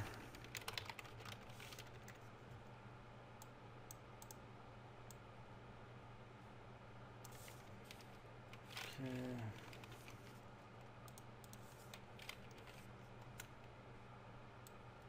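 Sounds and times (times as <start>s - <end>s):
keyboard typing: 0.0s - 2.2s.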